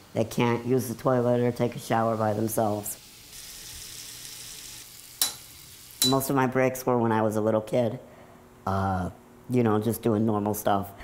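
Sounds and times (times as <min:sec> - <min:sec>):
water running at a sink: 0:00.4 - 0:06.2
sharp clink: 0:05.2 - 0:06.3.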